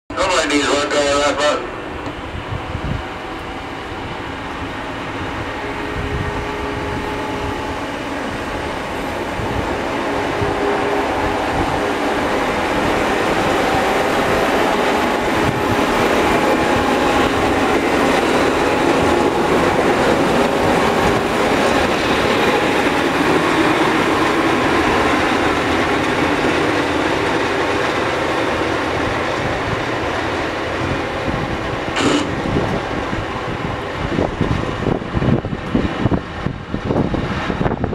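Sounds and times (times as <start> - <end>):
train wheels rumbling on rails: 0.6 - 37.9.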